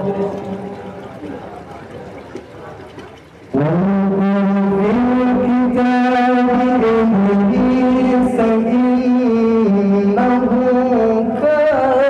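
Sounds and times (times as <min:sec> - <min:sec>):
man chanting through loudspeakers: 0:00.0 - 0:01.0, 0:03.5 - 0:12.0.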